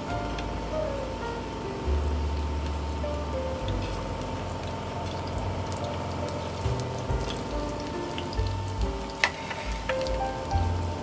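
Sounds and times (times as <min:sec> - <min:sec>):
oil sizzling and crackling: 0:00.0 - 0:11.0
soft background music: 0:00.0 - 0:11.0.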